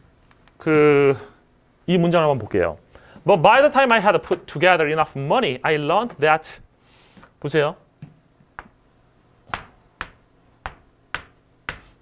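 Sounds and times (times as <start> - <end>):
chalk tapping on chalkboard: 9.5 - 12.0.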